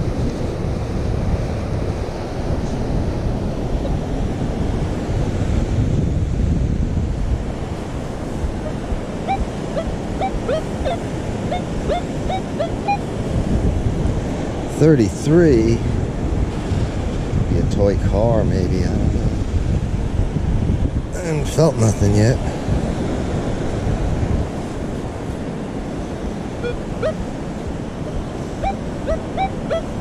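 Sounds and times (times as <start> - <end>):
surf: 0.0 - 30.0
wind buffeting microphone: 0.0 - 30.0
metal detector beeps: 8.6 - 13.0, 26.6 - 27.2, 28.6 - 30.0.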